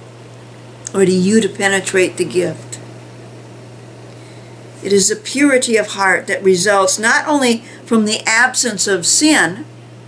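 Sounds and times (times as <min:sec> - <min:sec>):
low hum: 0:00.0 - 0:10.0
woman speaking: 0:00.9 - 0:02.9, 0:04.8 - 0:09.7.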